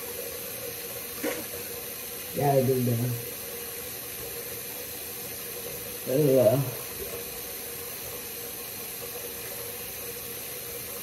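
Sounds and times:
tap water running into sink: 0:00.0 - 0:11.0.

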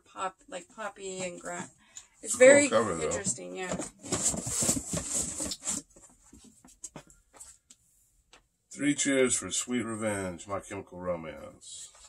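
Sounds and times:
rustling and scraping of records: 0:00.8 - 0:08.5, 0:11.7 - 0:12.0.

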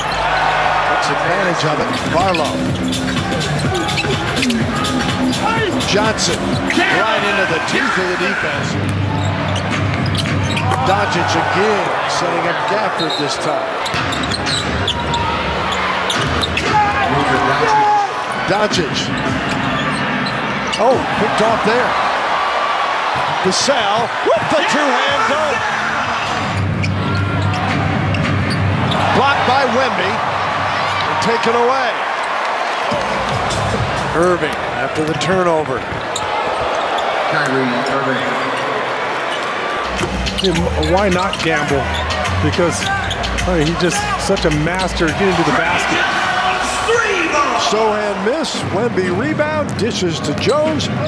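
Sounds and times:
sneakers squeaking on court: 0:00.0 - 0:00.7, 0:01.8 - 0:06.8, 0:08.8 - 0:10.9, 0:12.9 - 0:16.9, 0:19.1 - 0:21.6, 0:26.3 - 0:29.5, 0:32.1 - 0:45.4
crowd noise: 0:00.0 - 0:51.0.

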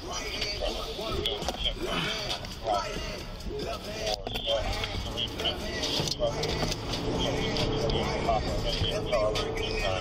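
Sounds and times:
road noise: 0:00.0 - 0:10.0
car engine inside cabin: 0:03.5 - 0:10.0.

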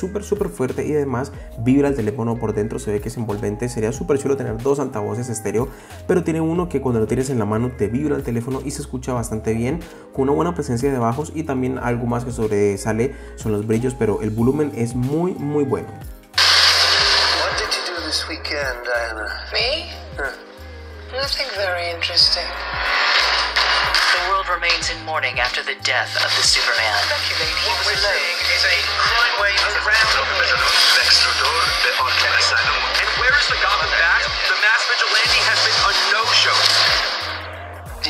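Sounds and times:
film dialogue: 0:00.0 - 0:38.0
dramatic music: 0:15.8 - 0:38.0
rushing hissing sound: 0:16.4 - 0:17.6, 0:22.4 - 0:24.3, 0:30.6 - 0:37.5.

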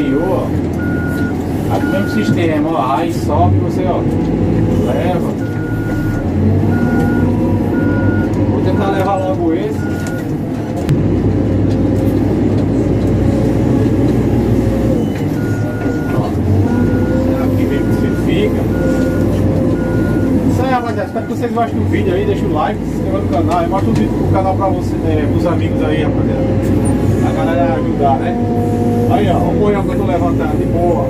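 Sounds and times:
diesel engine running under load: 0:00.0 - 0:31.0
reversing alarm beeps: 0:00.8 - 0:02.4, 0:05.4 - 0:09.1, 0:09.8 - 0:10.3, 0:15.0 - 0:21.5.

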